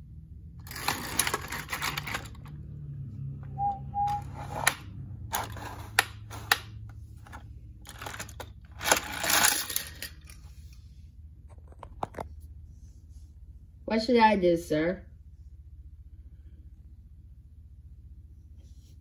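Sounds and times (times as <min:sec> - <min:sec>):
toy train rattling on plastic track: 0:00.6 - 0:02.5, 0:07.8 - 0:10.4.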